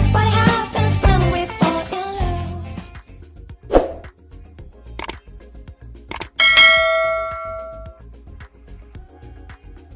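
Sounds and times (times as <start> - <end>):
faint background music: 0.0 - 9.9
mouse click: 5.0 - 5.2, 6.1 - 6.4
notification bell ding: 6.1 - 8.0.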